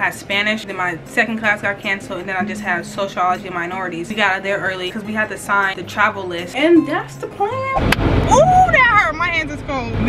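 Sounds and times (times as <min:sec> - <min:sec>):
woman talking: 0:00.0 - 0:07.8.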